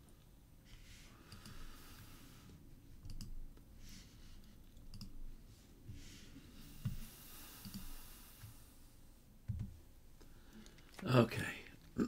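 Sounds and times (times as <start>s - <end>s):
computer mouse clicks: 1.3s - 1.7s, 3.0s - 3.4s, 4.7s - 5.2s, 7.6s - 7.9s.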